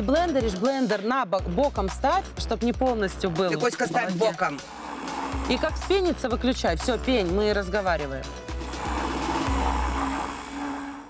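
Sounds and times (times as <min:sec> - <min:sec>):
immersion blender in metal bowl: 0:04.6 - 0:06.4, 0:08.5 - 0:11.0.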